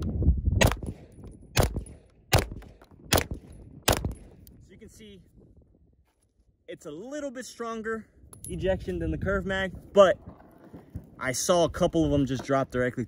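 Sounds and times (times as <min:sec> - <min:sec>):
carbine gunshots: 0:00.6 - 0:04.3.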